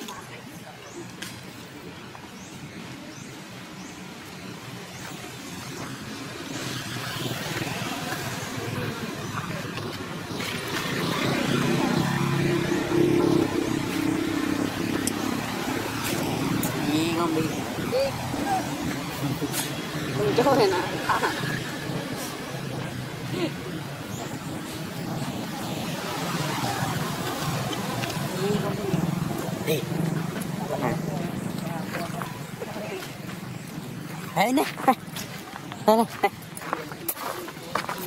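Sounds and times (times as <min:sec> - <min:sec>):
indistinct voices: 0:06.4 - 0:38.0.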